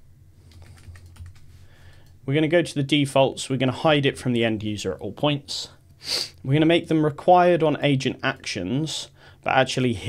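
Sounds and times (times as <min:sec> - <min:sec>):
keyboard typing: 0:00.5 - 0:02.1.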